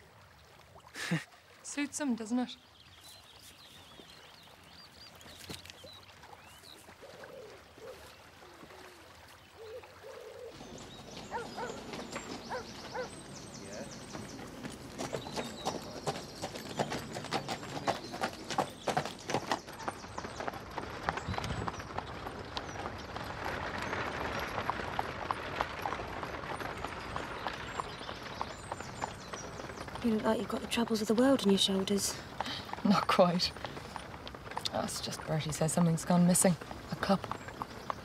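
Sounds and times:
horse hooves clip-clopping on dirt: 2.8s - 38.0s.

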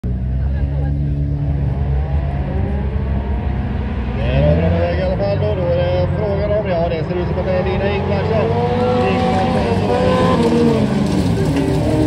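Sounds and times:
engine running and revving: 0.0s - 12.0s.

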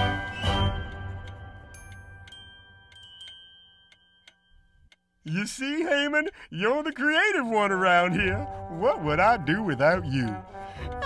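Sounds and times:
chiming music notes ringing: 0.0s - 5.2s
clock ticking softly: 1.1s - 11.0s.

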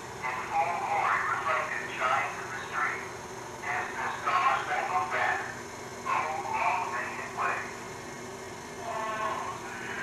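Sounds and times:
indistinct voices: 8.8s - 10.0s.

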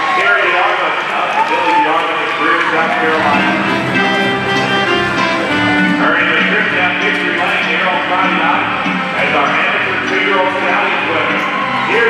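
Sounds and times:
man talking: 0.1s - 4.1s, 5.4s - 12.0s.

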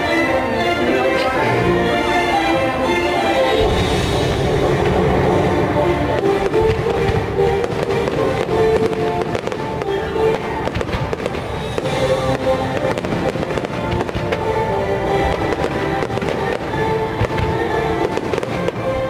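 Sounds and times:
orchestral music: 0.0s - 19.0s
low rumble: 3.5s - 8.8s
fireworks bangs and crackling: 3.5s - 19.0s.

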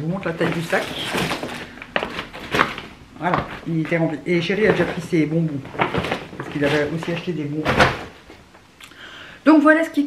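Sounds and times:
plastic bag rustling: 0.0s - 8.6s.

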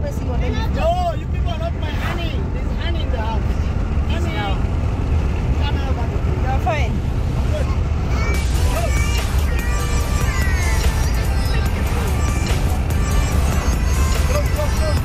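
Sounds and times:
vehicle engine and road noise: 0.0s - 15.0s.

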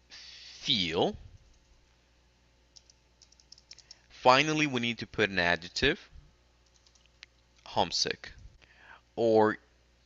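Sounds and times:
person speaking: 0.5s - 1.4s.

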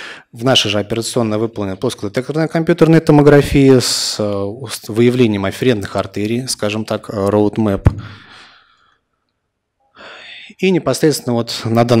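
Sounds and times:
man breathing into microphone: 0.0s - 0.3s, 8.0s - 9.1s.

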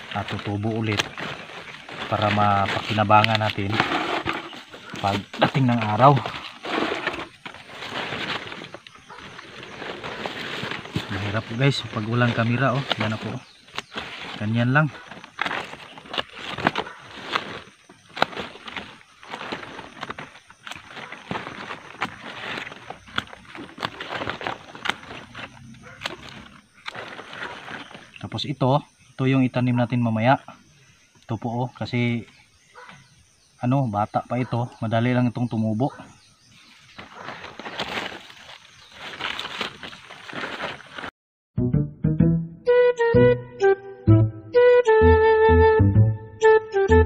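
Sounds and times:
leaves rustling: 0.0s - 28.6s, 34.4s - 41.1s.

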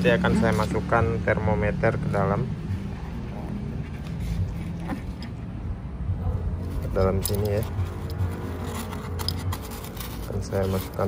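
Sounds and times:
hand rustling in helmet padding: 2.9s - 5.4s, 6.5s - 11.0s.

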